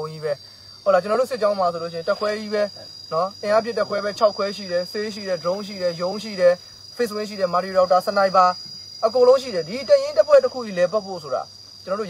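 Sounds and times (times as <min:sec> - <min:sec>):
crickets chirping drone: 0:00.0 - 0:12.0
man talking: 0:00.0 - 0:12.0.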